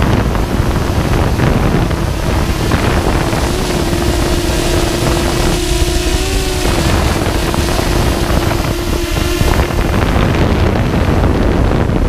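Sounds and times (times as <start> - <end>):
drone propellers humming: 0.0 - 12.0
wind buffeting microphone: 0.0 - 12.0.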